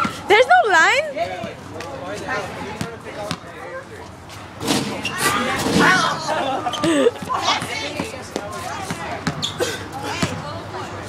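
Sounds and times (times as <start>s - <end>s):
kids chattering: 0.0s - 4.3s, 4.9s - 11.0s
basketball bouncing: 2.8s - 3.5s, 7.1s - 9.4s
shouting and laughter: 5.1s - 8.9s.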